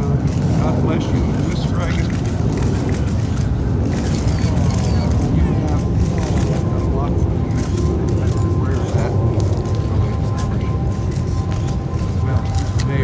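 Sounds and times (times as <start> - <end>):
people talking indistinctly: 0.0 - 13.0
steady low rumble: 0.0 - 13.0.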